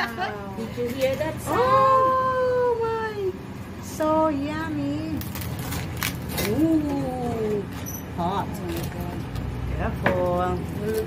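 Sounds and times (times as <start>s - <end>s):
knife crunching through crackling: 5.2s - 7.9s.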